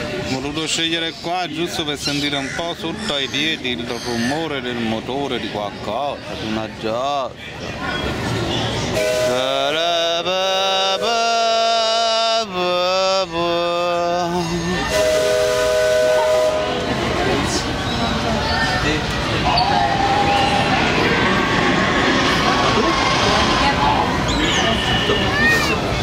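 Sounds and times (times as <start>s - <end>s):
steam whistle blowing: 14.9s - 16.8s.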